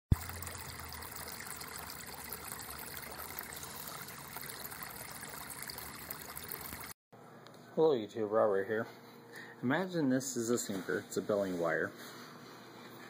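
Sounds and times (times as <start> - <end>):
water trickling: 0.1 - 7.0.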